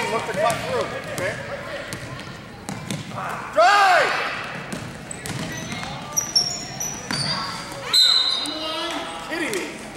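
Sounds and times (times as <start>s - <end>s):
basketball bouncing: 0.0s - 3.2s, 4.4s - 6.2s
sneakers squeaking: 0.0s - 3.5s, 4.3s - 9.3s.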